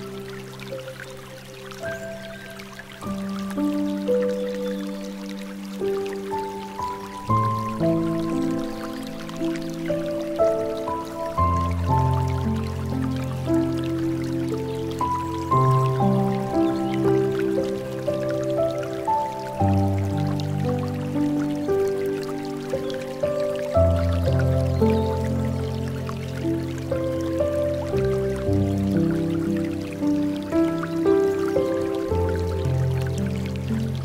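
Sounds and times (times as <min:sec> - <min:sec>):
slow gentle piano music: 0:00.0 - 0:34.0
water trickling and dripping: 0:00.0 - 0:34.0.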